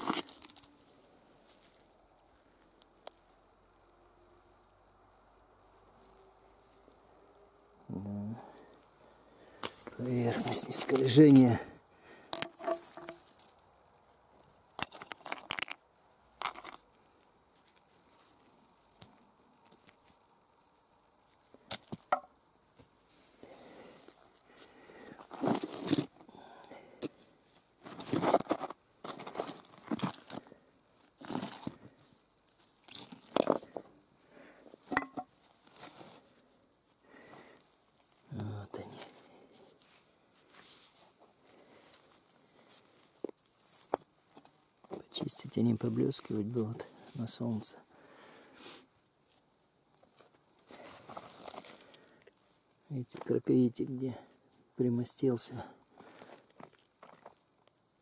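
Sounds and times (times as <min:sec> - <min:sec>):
stones scraping and knocking: 0:00.0 - 0:00.8, 0:12.3 - 0:13.6, 0:14.7 - 0:16.9, 0:25.2 - 0:26.3, 0:27.8 - 0:32.1, 0:32.8 - 0:34.0, 0:34.7 - 0:36.2, 0:50.1 - 0:51.9, 0:56.0 - 0:57.5.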